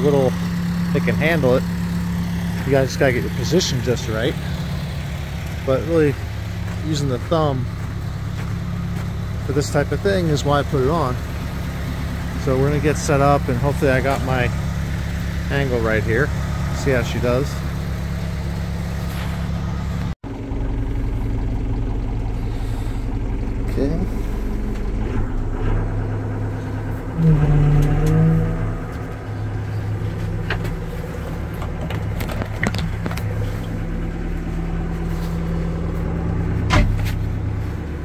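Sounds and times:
backhoe diesel engine running: 0:00.0 - 0:38.0.

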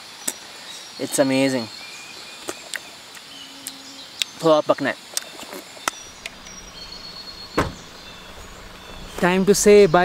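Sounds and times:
steady outdoor hiss: 0:00.0 - 0:10.0
car door thump: 0:06.2 - 0:09.3.

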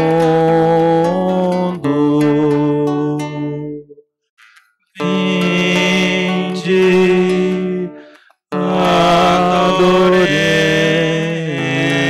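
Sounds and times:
slow sung chant: 0:00.0 - 0:04.0, 0:05.0 - 0:12.0.

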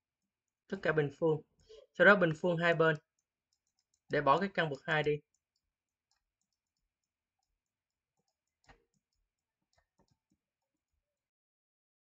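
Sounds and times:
stylus clicking on tablet: 0:01.6 - 0:11.3.

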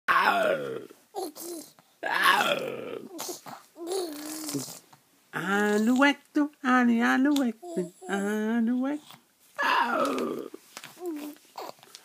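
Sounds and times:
baby cooing: 0:00.1 - 0:04.8, 0:07.6 - 0:08.5, 0:09.6 - 0:12.0
baby grunting: 0:00.1 - 0:04.8, 0:09.6 - 0:11.8.

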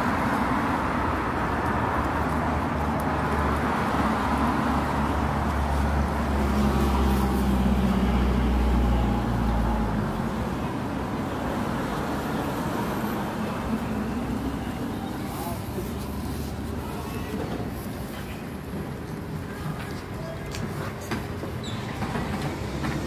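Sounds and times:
city street traffic: 0:00.0 - 0:23.0.

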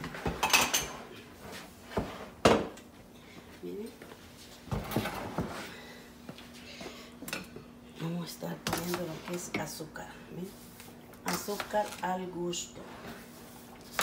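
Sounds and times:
dishes and utensils clinking: 0:00.2 - 0:01.1.

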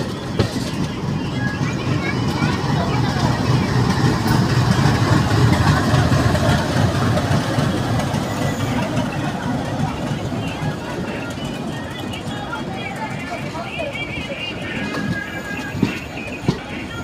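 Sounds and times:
moving train rumble: 0:00.0 - 0:17.0.

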